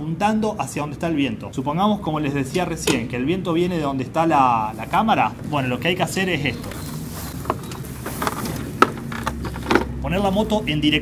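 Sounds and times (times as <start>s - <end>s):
motorcycle clacks and knocks: 7.4s - 10.0s.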